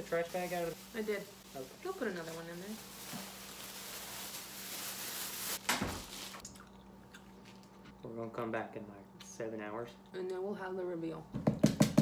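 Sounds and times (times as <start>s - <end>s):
plastic bag rustling: 0.0s - 6.4s.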